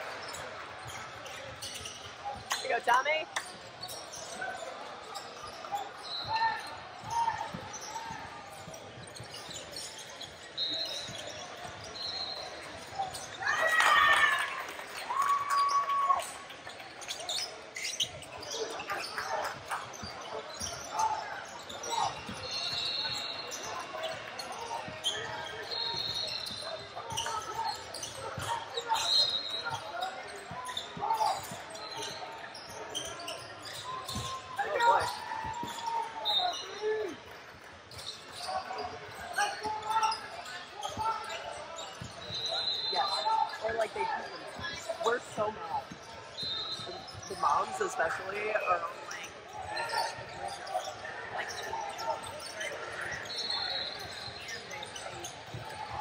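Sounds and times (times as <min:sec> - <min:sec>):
shouts and chatter: 0:00.0 - 0:56.0
sneakers squeaking: 0:00.0 - 0:56.0.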